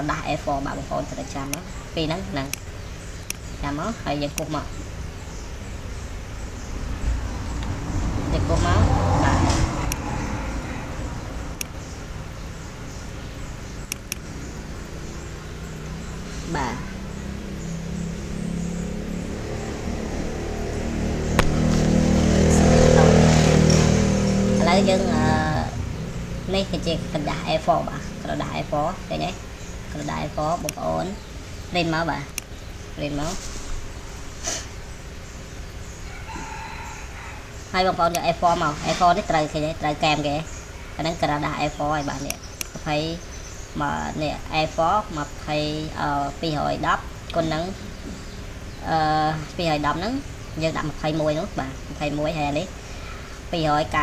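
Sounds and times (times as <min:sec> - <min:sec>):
person narrating: 0:00.0 - 0:02.6, 0:03.6 - 0:04.8, 0:08.2 - 0:10.2, 0:16.4 - 0:17.1, 0:24.5 - 0:32.4, 0:33.0 - 0:33.4, 0:37.8 - 0:43.2, 0:43.8 - 0:47.9, 0:48.8 - 0:52.8, 0:53.5 - 0:54.0
motor engine running: 0:00.0 - 0:36.7
steady low hum: 0:00.0 - 0:54.0
sharp click: 0:13.9 - 0:14.3, 0:21.4 - 0:21.8, 0:32.3 - 0:32.5.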